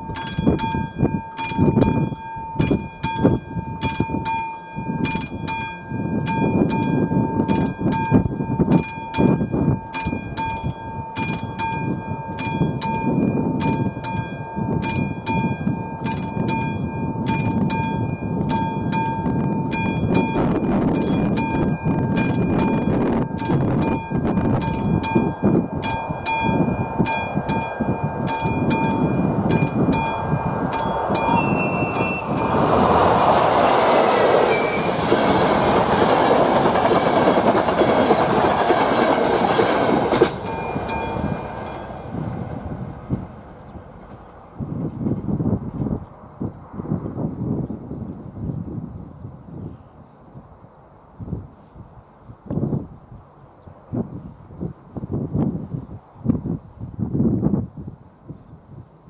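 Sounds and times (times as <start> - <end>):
level crossing warning signal: 0.0 - 42.3
train wheels rushing: 0.0 - 45.7.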